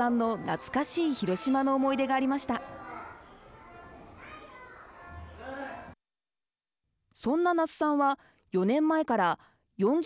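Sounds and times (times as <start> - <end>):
children chattering: 0.0 - 5.9.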